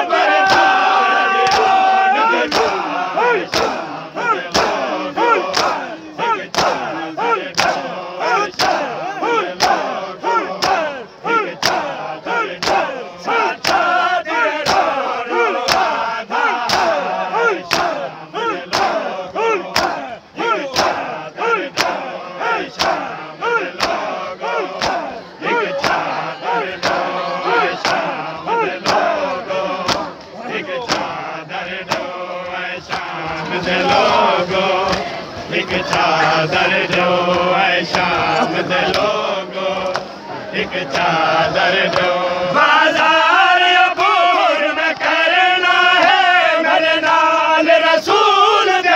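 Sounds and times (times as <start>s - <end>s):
crowd of men chanting: 0.0s - 48.9s
hands slapping chests: 2.5s - 2.8s, 3.5s - 3.8s, 5.5s - 5.8s, 6.5s - 6.9s, 7.5s - 7.8s, 11.6s - 11.9s, 13.6s - 13.9s, 15.6s - 15.9s, 17.7s - 18.0s, 18.7s - 19.0s, 19.7s - 20.0s, 21.7s - 22.0s, 23.8s - 24.0s, 24.8s - 25.1s, 27.8s - 28.1s, 28.8s - 29.1s, 29.8s - 30.3s, 30.9s - 31.1s, 31.8s - 32.1s.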